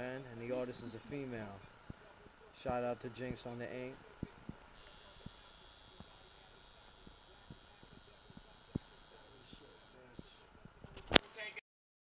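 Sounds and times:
faint steady high hiss: 0:00.0 - 0:11.6.

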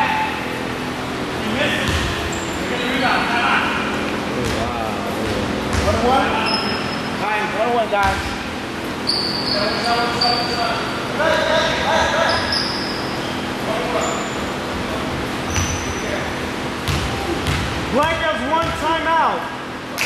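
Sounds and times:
players' voices echoing: 0:00.0 - 0:08.8, 0:17.1 - 0:19.8
sneakers squeaking: 0:00.1 - 0:07.3, 0:08.0 - 0:18.8
basketball bouncing on floor: 0:01.8 - 0:02.2, 0:04.4 - 0:06.1, 0:16.8 - 0:18.8.

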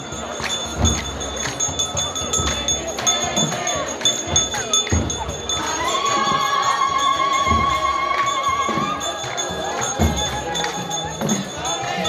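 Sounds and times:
drumming: 0:00.0 - 0:12.0
processional chanting: 0:00.0 - 0:12.0.

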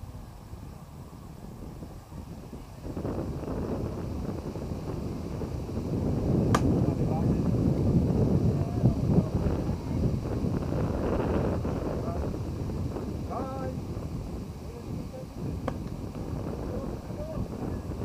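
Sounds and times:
wind noise on microphone: 0:00.0 - 0:18.0
bat cracking a ball: 0:06.5 - 0:06.8.

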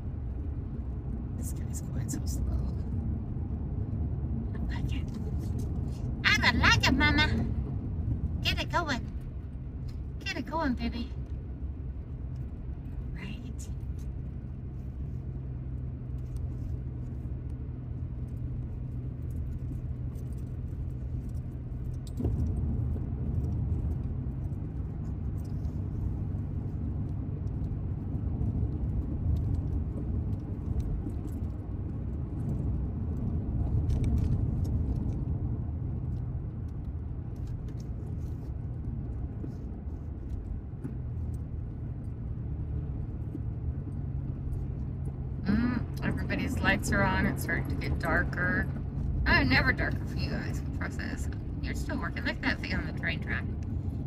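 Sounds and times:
car road noise at highway speed: 0:00.0 - 0:54.0.

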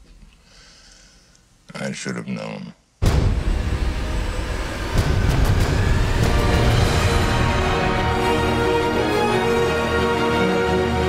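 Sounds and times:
deep rumble hit: 0:03.0 - 0:09.0.

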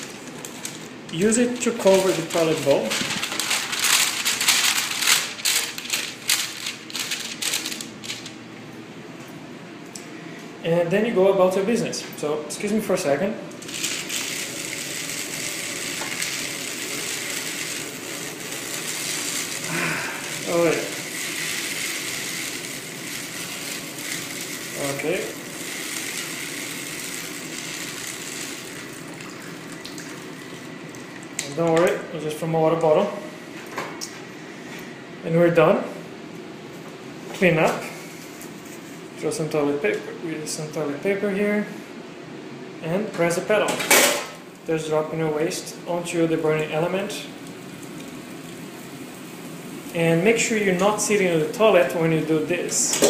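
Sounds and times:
paper liner rustling and crinkling: 0:00.0 - 0:08.4, 0:13.6 - 0:29.4
water pouring into toilet bowl: 0:14.0 - 0:31.4, 0:47.4 - 0:49.8.

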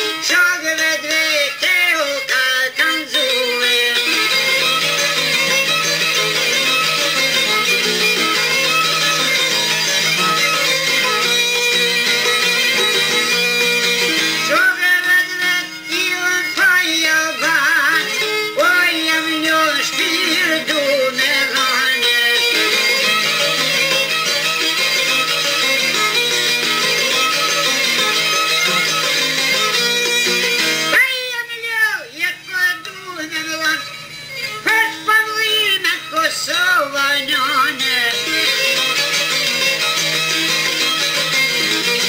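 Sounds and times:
person singing: 0:00.0 - 0:07.5, 0:14.1 - 0:23.7, 0:30.9 - 0:39.6
instrumental accompaniment: 0:00.0 - 0:42.0.

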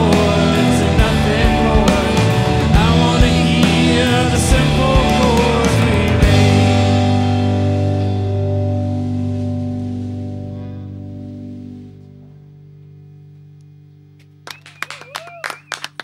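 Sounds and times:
guitar and keyboard chord ringing: 0:00.0 - 0:14.5
hand claps: 0:14.2 - 0:16.0.

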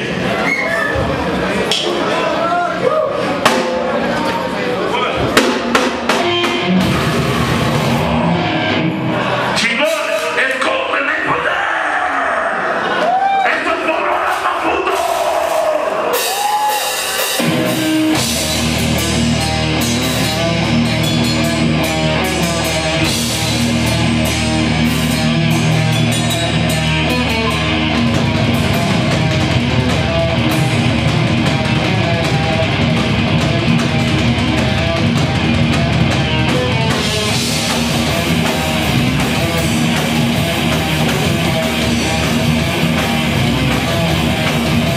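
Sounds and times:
heavy metal band playing: 0:01.1 - 0:44.9
distorted guitars and bass: 0:03.2 - 0:44.9
cymbals and drums: 0:03.4 - 0:04.1, 0:05.2 - 0:08.8, 0:14.3 - 0:44.9.

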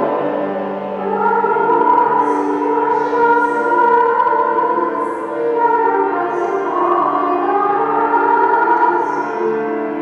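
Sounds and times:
slow instrumental music: 0:00.0 - 0:10.0.

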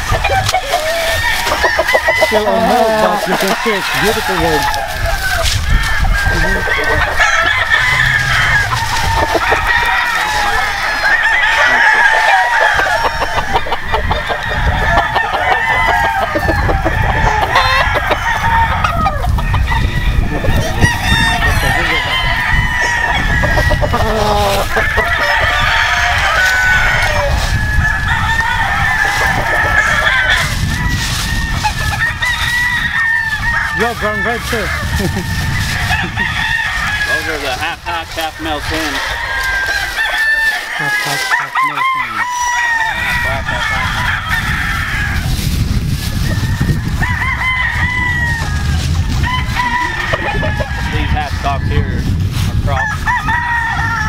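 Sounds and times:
hens clucking: 0:00.0 - 0:54.0
roosters crowing: 0:00.0 - 0:54.0.

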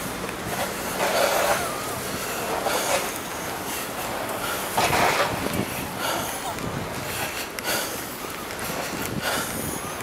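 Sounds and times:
city street noise: 0:00.0 - 0:10.0.

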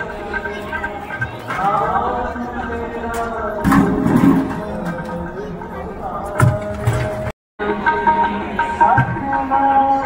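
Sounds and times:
person singing a hymn: 0:01.5 - 0:10.0.

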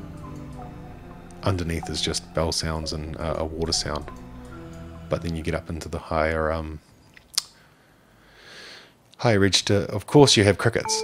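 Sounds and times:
mouth click: 0:07.1 - 0:07.6
soft breath drawn in: 0:07.6 - 0:09.0.

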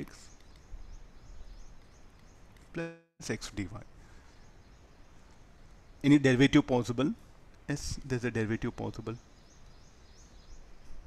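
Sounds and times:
faint background hiss: 0:00.0 - 0:11.0.

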